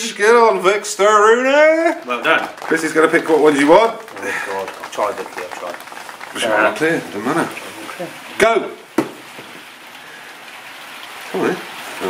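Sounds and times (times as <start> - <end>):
heavy rain on corrugated roof: 0.0 - 12.0.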